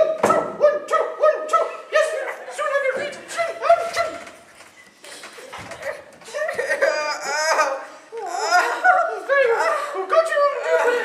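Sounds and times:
people laughing loudly: 0:06.3 - 0:11.0.

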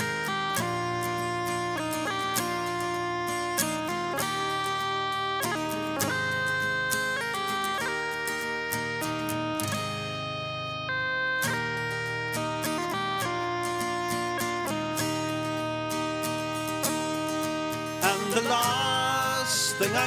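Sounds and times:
guitar playing: 0:00.0 - 0:20.0
sustained melody line: 0:00.0 - 0:20.0.

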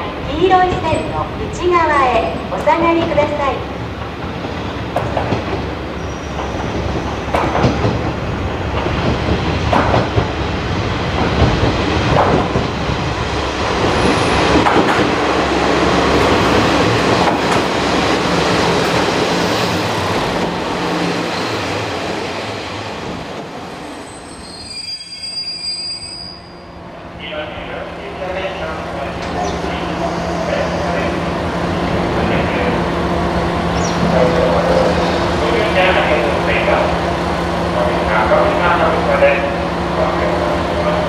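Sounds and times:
high brake squeal: 0:06.0 - 0:06.5, 0:23.9 - 0:26.7
train wheels knocking over rail joints: 0:06.4 - 0:12.8.

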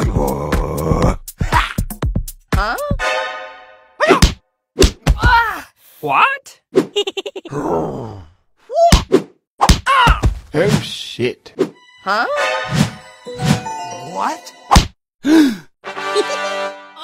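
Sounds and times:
cartoon whacks and thuds: 0:04.1 - 0:05.4, 0:08.8 - 0:10.9, 0:14.7 - 0:15.0.

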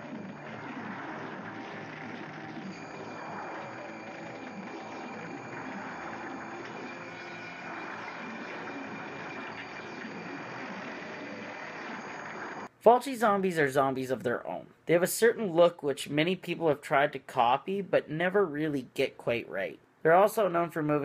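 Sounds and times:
dense drone: 0:00.0 - 0:12.7.

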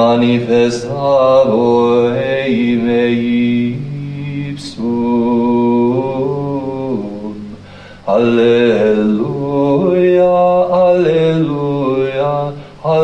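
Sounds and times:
voices singing chant: 0:00.0 - 0:13.0.

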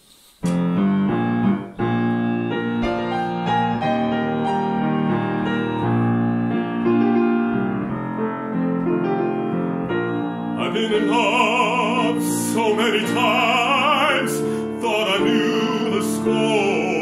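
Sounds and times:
slow solo piano chords: 0:00.4 - 0:17.0.

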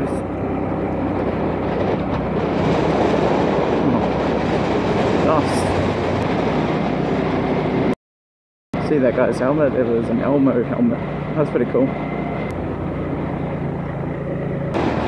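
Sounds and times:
motorcycle engine running low: 0:00.0 - 0:08.0, 0:08.8 - 0:15.0
wind rushing over microphone: 0:00.0 - 0:08.0.

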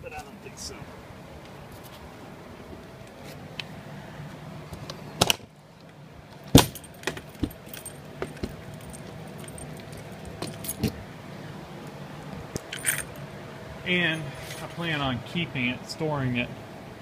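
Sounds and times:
keys jangling: 0:06.6 - 0:11.0, 0:12.6 - 0:13.2.

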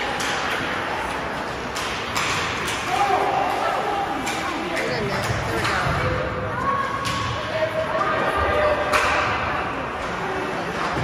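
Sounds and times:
hockey stick hitting puck: 0:00.0 - 0:06.2, 0:06.9 - 0:07.6, 0:08.7 - 0:11.0
voices echoing in arena: 0:00.0 - 0:11.0.

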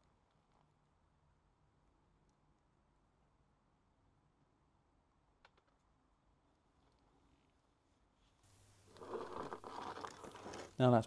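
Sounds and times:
hands and sleeves scraping and rustling: 0:08.2 - 0:10.8.

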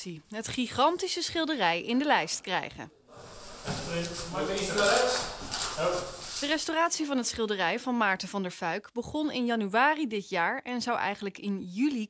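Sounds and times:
people talking indistinctly: 0:00.0 - 0:09.9
rustling and handling noise: 0:03.1 - 0:06.8.

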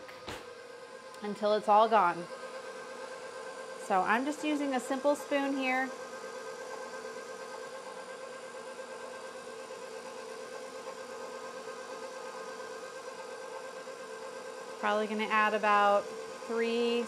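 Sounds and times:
stand mixer motor running: 0:00.0 - 0:17.0.

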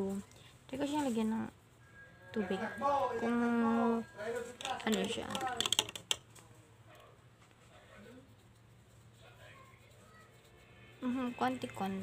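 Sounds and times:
faint indistinct voices: 0:01.8 - 0:12.0.

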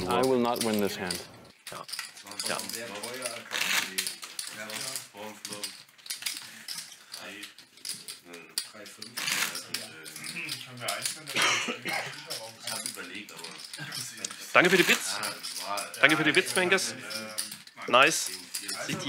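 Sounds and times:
poker chips clicking: 0:00.2 - 0:11.2, 0:12.2 - 0:18.9
people talking: 0:08.3 - 0:19.0.

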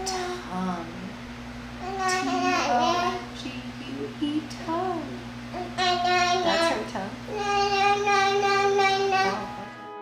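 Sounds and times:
fan and sound machine hum: 0:00.0 - 0:10.0.

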